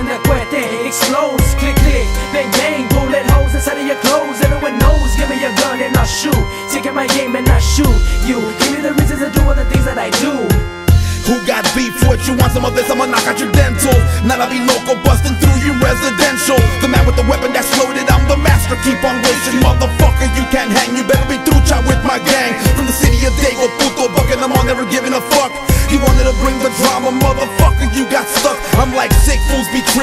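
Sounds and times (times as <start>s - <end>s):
hip hop beat with heavy bass: 0.0s - 30.0s
rapped vocal: 0.0s - 30.0s.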